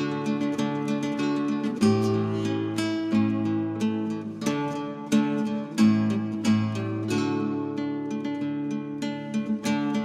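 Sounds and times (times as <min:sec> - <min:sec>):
plucked acoustic guitar: 0:00.0 - 0:10.0.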